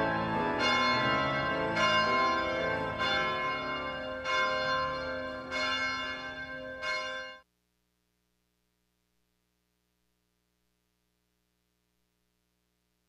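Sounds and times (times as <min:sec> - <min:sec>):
held chords in music: 0:00.0 - 0:07.2
bells ringing: 0:00.0 - 0:07.4.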